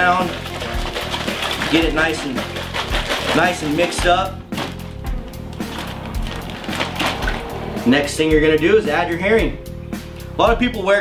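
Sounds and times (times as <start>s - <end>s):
background music: 0.0s - 11.0s
plastic bag crinkling: 0.3s - 4.8s, 5.6s - 7.5s.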